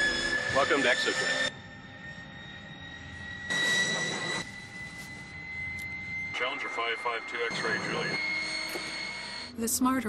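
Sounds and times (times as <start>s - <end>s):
jet engine whine: 0.0s - 10.0s.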